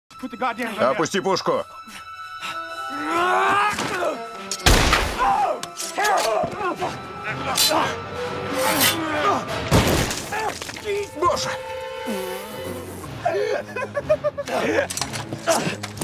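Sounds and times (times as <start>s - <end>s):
men grunting and shouting: 2.4s - 4.6s, 5.2s - 9.7s, 13.0s - 16.0s.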